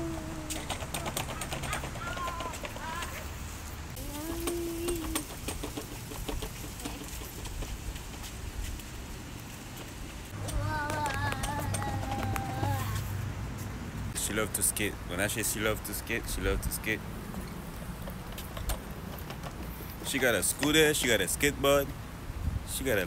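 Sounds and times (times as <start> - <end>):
young child's voice: 0.0 - 3.3, 4.0 - 5.4, 10.4 - 13.2
scooter rolling over brick pavers: 0.0 - 13.1, 17.2 - 21.7.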